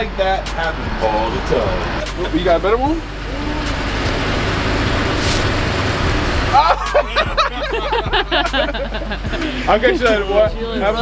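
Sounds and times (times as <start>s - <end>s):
truck engine rumbling: 0.0s - 11.0s
brief hiss: 5.2s - 5.6s.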